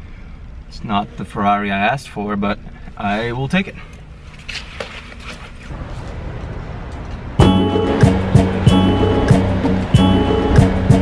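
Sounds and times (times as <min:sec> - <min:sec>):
background music with steady beat: 0:07.4 - 0:11.0.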